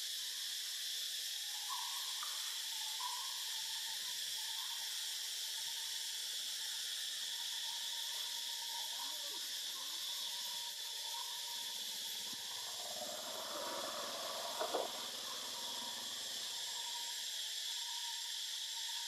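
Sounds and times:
insects chorus in trees: 0.0s - 19.0s.

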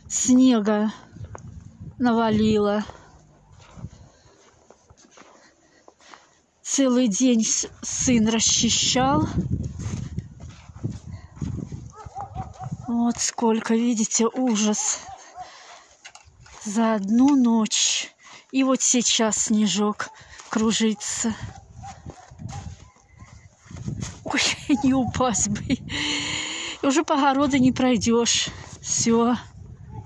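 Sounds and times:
footsteps crunching in snow: 0.3s - 6.6s, 7.2s - 25.4s.

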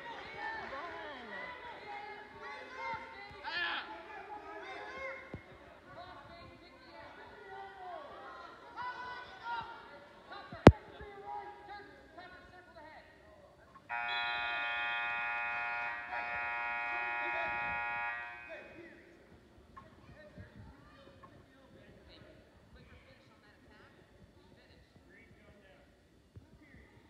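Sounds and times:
scoreboard buzzer: 13.9s - 19.0s.

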